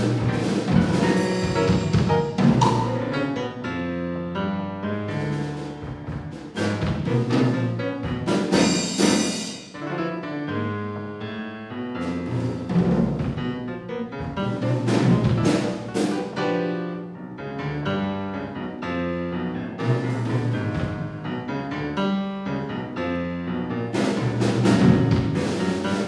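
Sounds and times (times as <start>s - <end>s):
drum strokes: 0.0s - 3.5s, 5.1s - 9.8s, 12.0s - 13.6s, 14.2s - 16.6s, 19.8s - 21.3s, 23.9s - 26.0s
piano chords: 0.0s - 26.0s.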